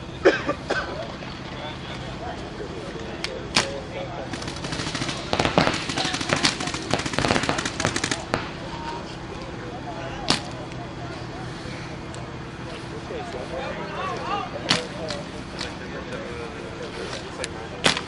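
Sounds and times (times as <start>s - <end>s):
paintball markers firing: 3.5s - 8.6s.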